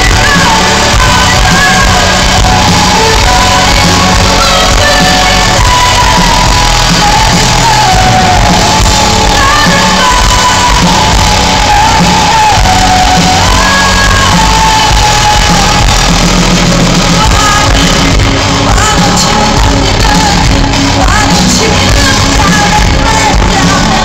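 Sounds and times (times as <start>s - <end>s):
woman singing long notes: 0.0s - 15.9s
crowd shouting: 0.0s - 24.0s
drums: 0.0s - 24.0s
electric guitars: 0.0s - 24.0s.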